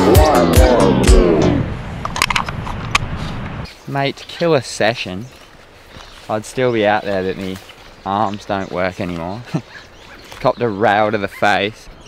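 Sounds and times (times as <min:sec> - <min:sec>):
microphone handling clicks and knocks: 0:02.0 - 0:03.6
man talking: 0:03.8 - 0:05.4, 0:06.2 - 0:11.9.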